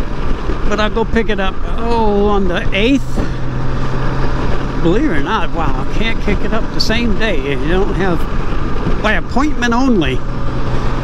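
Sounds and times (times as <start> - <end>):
low engine drone: 0.0 - 11.0
wind and road rush: 0.0 - 11.0.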